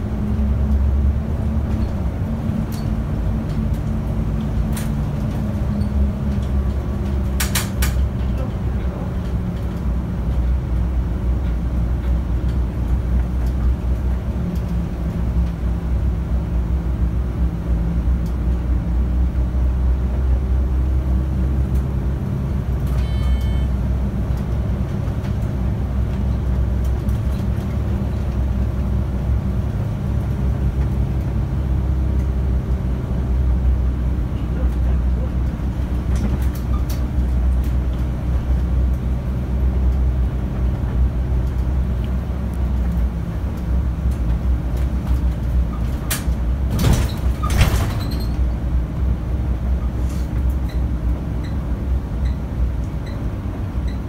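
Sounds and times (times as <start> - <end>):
bus engine droning: 0.0 - 54.0
short electronic beep: 22.9 - 23.7.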